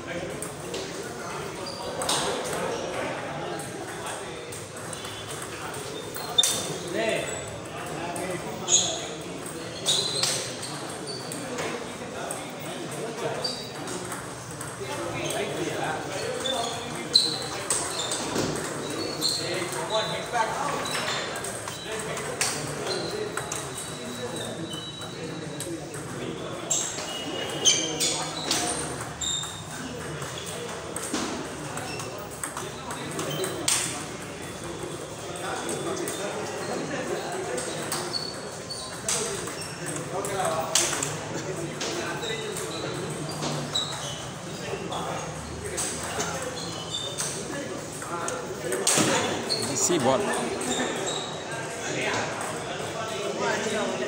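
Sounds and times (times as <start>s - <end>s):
background chatter: 0.0s - 54.0s
table tennis balls clicking: 28.0s - 44.2s.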